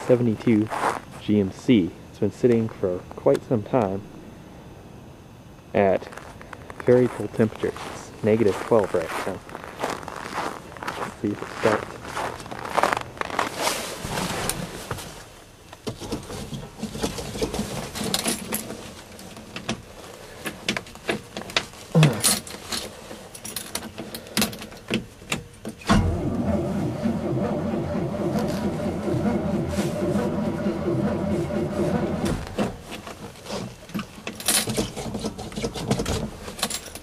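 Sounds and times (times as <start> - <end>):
footsteps crunching in snow: 0.0 - 1.4, 6.0 - 15.3
keys jangling: 22.2 - 24.9, 34.4 - 34.8
engine starter cranking: 25.8 - 32.8.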